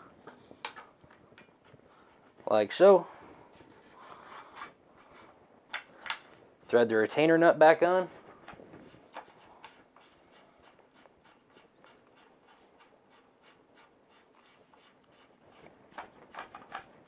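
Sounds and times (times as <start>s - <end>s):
nut threading clicks and rubbing: 8.4s - 17.0s.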